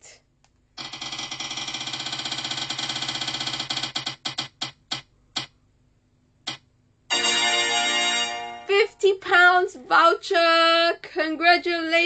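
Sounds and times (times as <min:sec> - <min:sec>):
prize wheel app ticking: 0:00.8 - 0:05.5.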